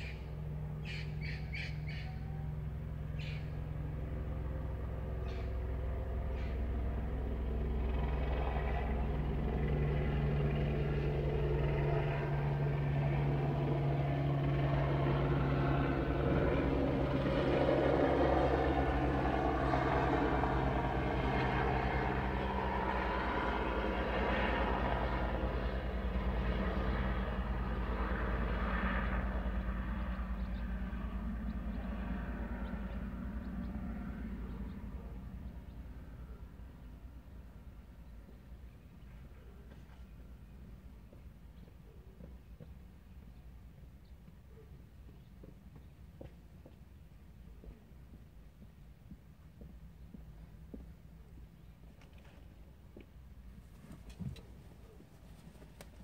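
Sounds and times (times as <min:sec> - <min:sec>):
vehicle engine rumble: 0:00.0 - 0:56.0.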